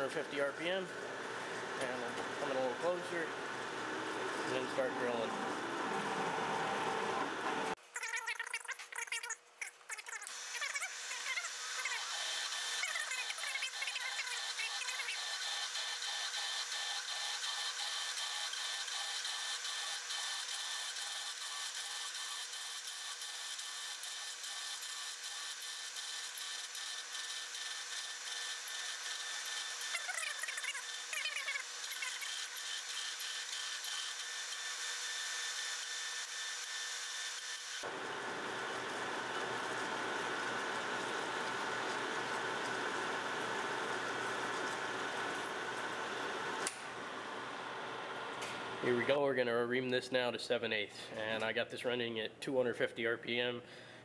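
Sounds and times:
lathe drill cutting steel: 2.4 - 7.8, 10.9 - 46.2.

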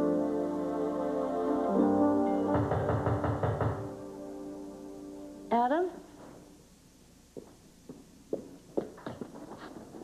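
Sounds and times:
background music chord: 0.0 - 6.0
knocking on a door: 2.5 - 3.9.

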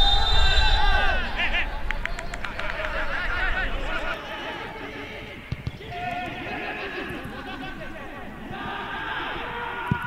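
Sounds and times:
people shouting and calling: 0.3 - 10.0.

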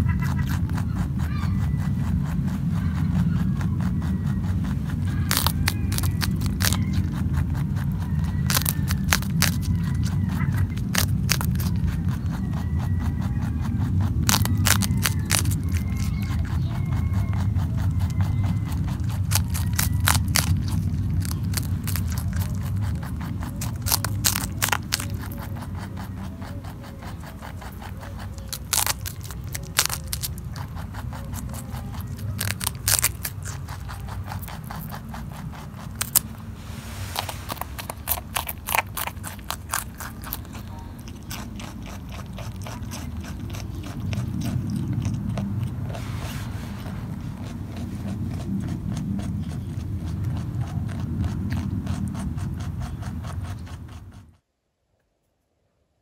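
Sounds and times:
rabbit crunching celery: 0.0 - 54.4
low steady rumble: 0.0 - 54.5.

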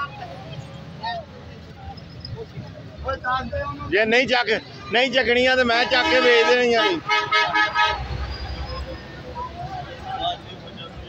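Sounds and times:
low traffic rumble: 0.0 - 11.0
vehicle horn tooting: 5.7 - 8.6.

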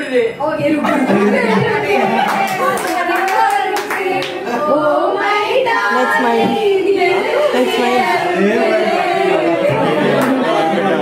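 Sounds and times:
voices: 0.4 - 11.0
people clapping: 1.7 - 4.6, 9.6 - 10.6.

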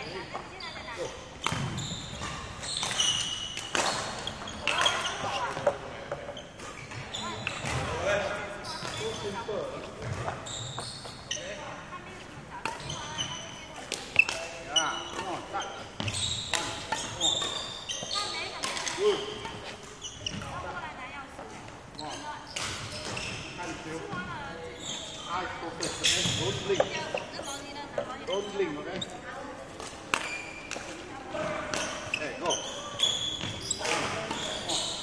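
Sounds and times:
shoes squeaking on floor: 0.0 - 35.0.

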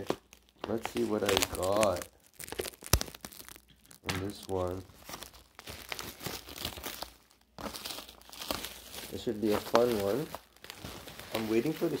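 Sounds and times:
packaging crinkling and tearing: 0.0 - 12.0.

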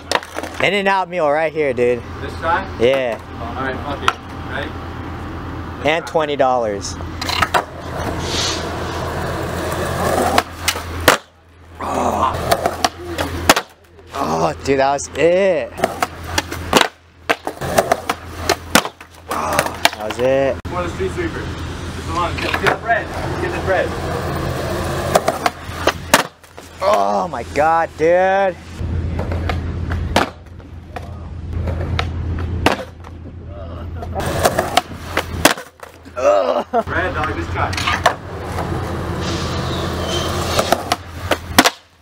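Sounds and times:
skateboard cracking on concrete: 0.0 - 0.7, 9.0 - 11.4, 12.4 - 13.8, 15.8 - 20.3, 24.5 - 27.1, 34.2 - 36.1, 40.3 - 41.9
skateboard wheels rolling on concrete: 0.0 - 4.7, 5.4 - 42.0.

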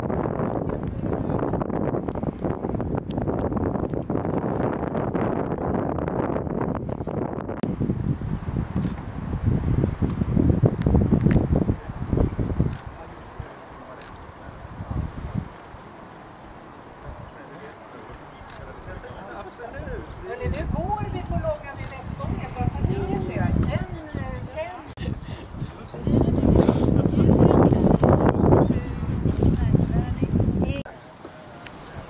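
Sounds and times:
wind buffeting microphone: 0.0 - 17.5, 18.1 - 30.9.

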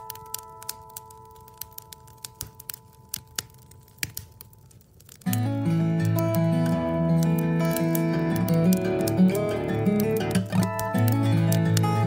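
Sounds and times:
acoustic guitar: 0.0 - 12.0
sharp pops: 0.0 - 12.0
wood stove fire crackling: 0.0 - 12.0.

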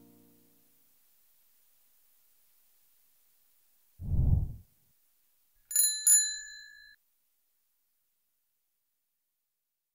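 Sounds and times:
bell dings: 5.7 - 7.0.

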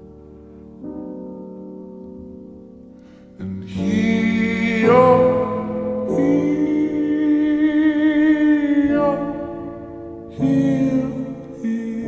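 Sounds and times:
soft musical accompaniment: 0.0 - 12.0
person singing a long note: 3.4 - 9.5, 10.3 - 12.0.

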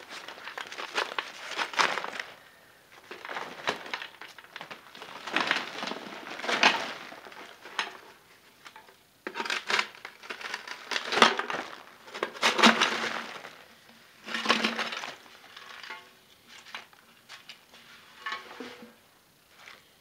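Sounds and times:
coal lumps crunching and clinking: 0.0 - 2.4, 3.0 - 17.6, 18.2 - 19.0.

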